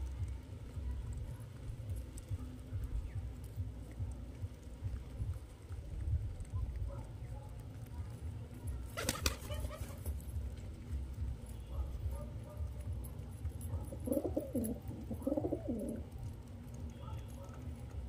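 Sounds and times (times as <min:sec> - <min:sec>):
steady low rumble: 0:00.0 - 0:09.0, 0:10.0 - 0:18.0
pigeons cooing: 0:13.6 - 0:16.2.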